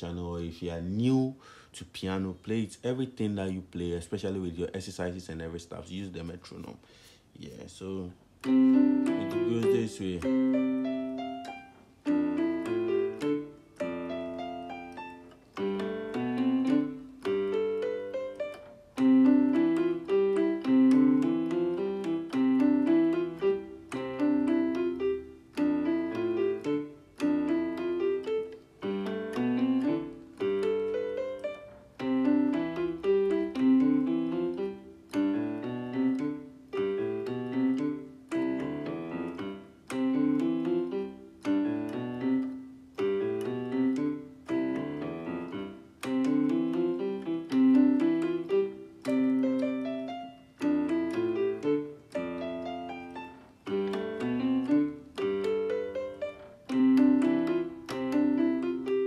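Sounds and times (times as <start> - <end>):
piano playing quick runs: 8.4 - 59.0.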